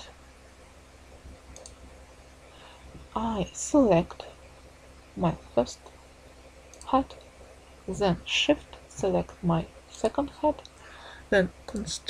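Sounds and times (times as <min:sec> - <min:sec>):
low steady hum: 0:00.0 - 0:12.0
computer mouse clicks: 0:01.5 - 0:01.8, 0:06.6 - 0:07.3.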